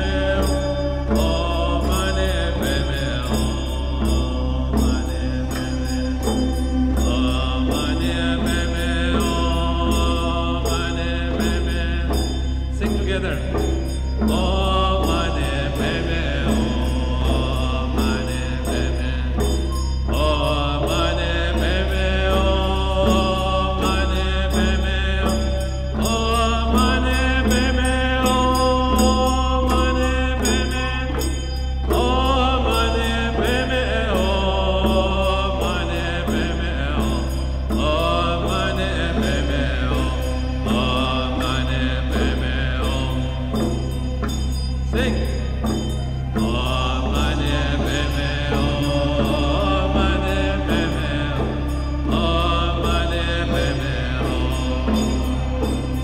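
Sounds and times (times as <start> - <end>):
chanted mantra-like voices: 0.0 - 56.0
steady low drone: 0.0 - 56.0.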